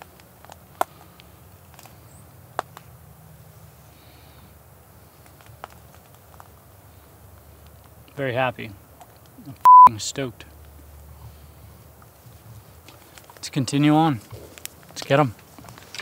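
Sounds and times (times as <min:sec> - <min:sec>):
light rustles: 0:11.2 - 0:16.0.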